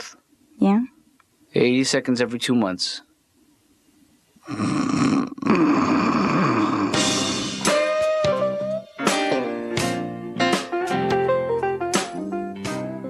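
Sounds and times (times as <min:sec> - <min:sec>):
blues guitar: 0:06.6 - 0:13.0.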